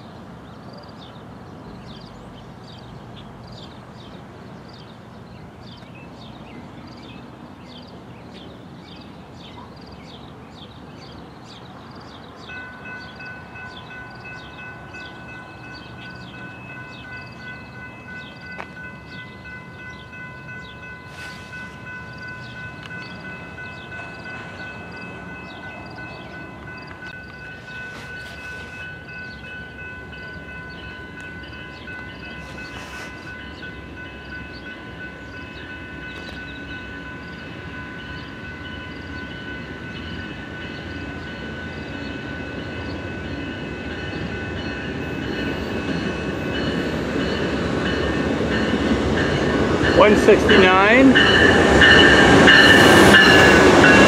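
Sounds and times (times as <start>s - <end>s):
approaching diesel train: 0.0s - 54.0s
crossing bell ringing: 11.1s - 54.0s.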